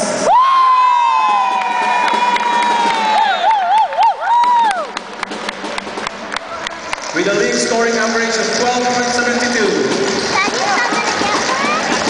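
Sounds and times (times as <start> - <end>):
hand claps: 1.6 - 7.3.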